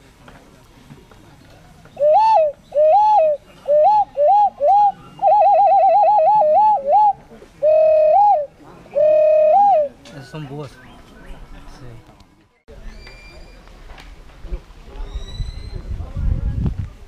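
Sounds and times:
handheld whistle warbling: 0:02.0 - 0:09.9.

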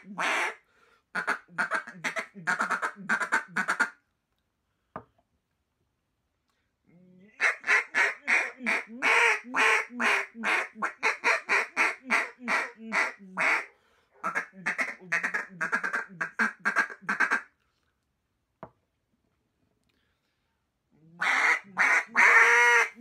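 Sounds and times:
duck call quacks: 0:00.0 - 0:00.6, 0:01.2 - 0:04.0, 0:07.4 - 0:17.5, 0:21.2 - 0:23.0.

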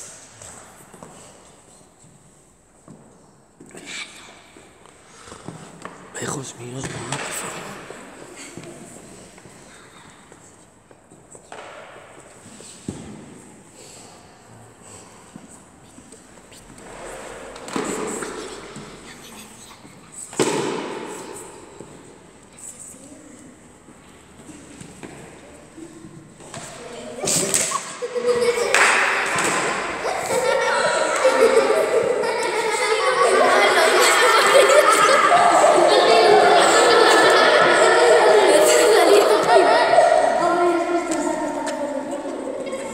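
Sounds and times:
children chattering in a hall: 0:00.0 - 0:42.9.

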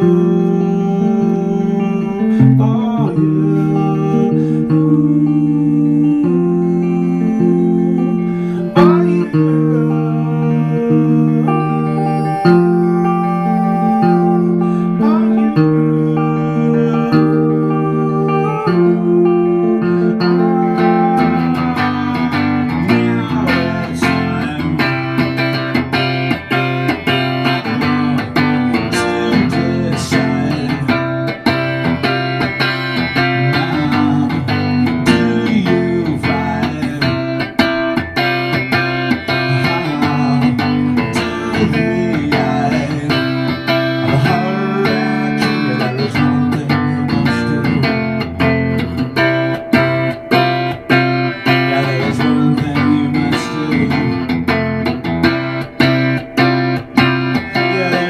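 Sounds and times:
electric guitar through amplifier: 0:00.0 - 0:58.0.

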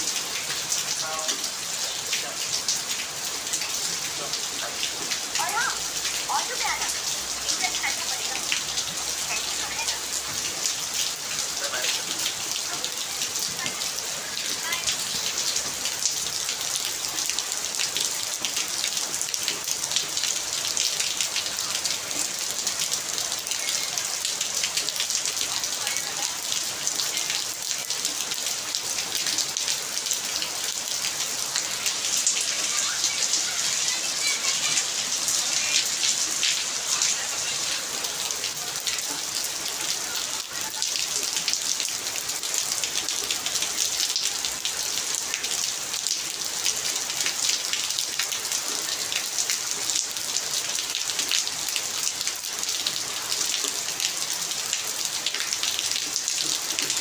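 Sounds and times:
heavy rain on paving: 0:00.0 - 0:57.0.

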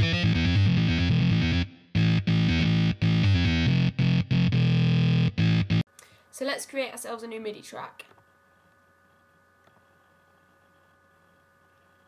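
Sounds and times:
faint electrical hum: 0:05.9 - 0:12.0.

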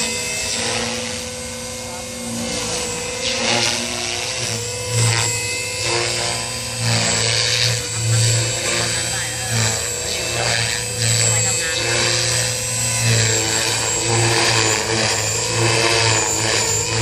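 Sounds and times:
model helicopter high whine: 0:00.0 - 0:17.0.

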